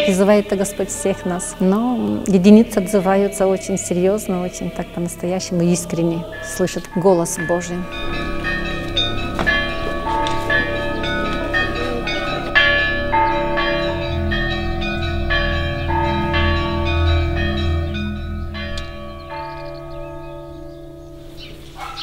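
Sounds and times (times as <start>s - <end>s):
deep bell: 0.0s - 21.9s
church bells ringing: 0.0s - 22.0s.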